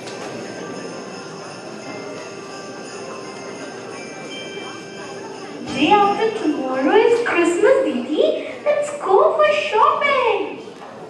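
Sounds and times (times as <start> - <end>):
small bells jingling: 0.2 - 8.2.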